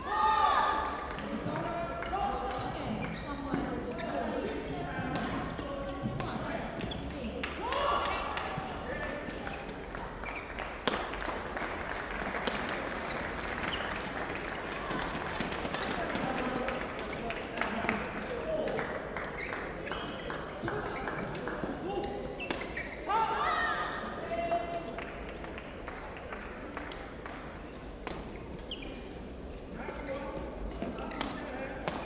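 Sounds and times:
voices echoing in hall: 0.0s - 32.0s
shoes on court: 0.6s - 11.4s, 12.3s - 23.8s, 26.3s - 32.0s
racket hitting shuttlecock: 10.8s - 11.2s, 12.4s - 12.7s, 21.2s - 22.9s, 28.0s - 28.4s, 30.4s - 32.0s.

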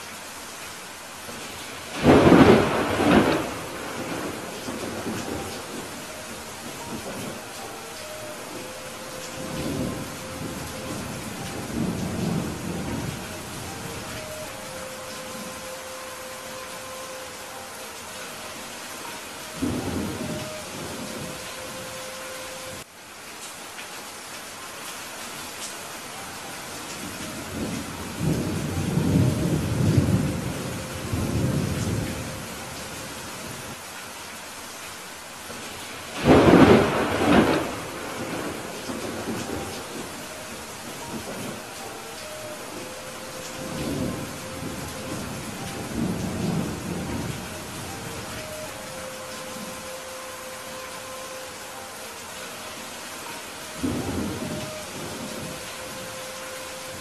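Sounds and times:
steady rain: 0.0s - 57.0s
thunder rumbling: 1.3s - 18.4s, 19.0s - 22.0s, 35.7s - 51.7s, 53.2s - 57.0s.

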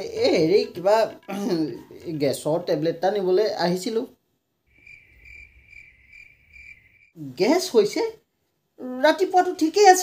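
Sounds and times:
crickets chirping: 4.7s - 7.2s.

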